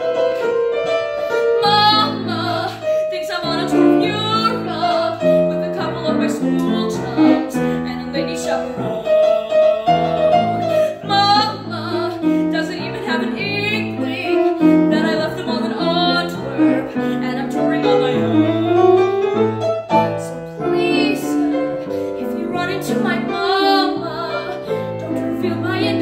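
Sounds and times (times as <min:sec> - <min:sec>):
grand piano chords: 0:00.0 - 0:26.0
woman singing with vibrato: 0:01.5 - 0:19.0, 0:19.8 - 0:26.0.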